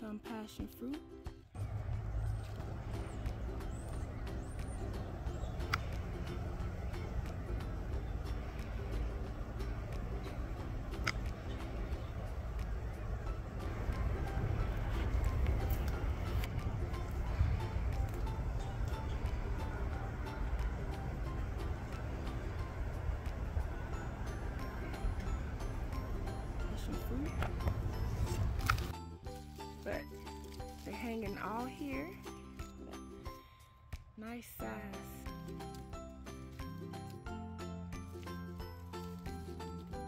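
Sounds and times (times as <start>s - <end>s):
faint music: 0.0s - 40.0s
heavy machinery rumbling: 1.6s - 32.0s.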